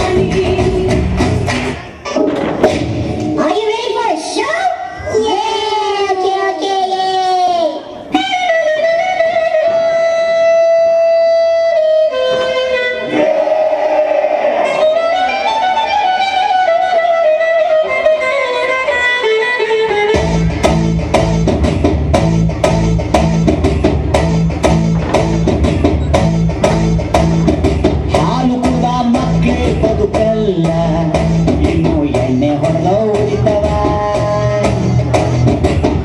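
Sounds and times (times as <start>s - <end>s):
dance music: 0.0s - 2.0s, 20.1s - 36.0s
heavy beat with deep bass: 20.2s - 36.0s.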